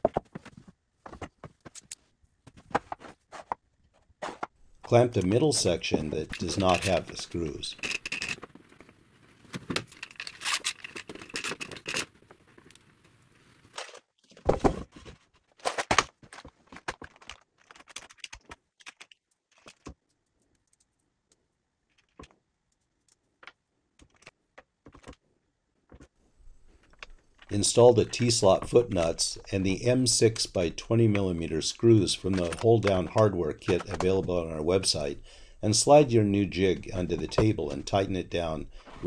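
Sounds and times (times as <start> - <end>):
metal hardware clinking in plastic box: 6.2 - 8.5, 9.6 - 12.1, 32.2 - 34.1.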